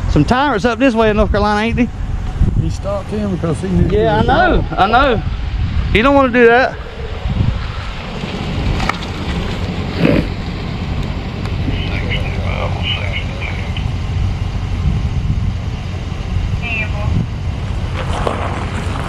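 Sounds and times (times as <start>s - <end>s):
wind rumble on microphone: 0.0s - 19.0s
pickup truck driving up: 1.9s - 19.0s.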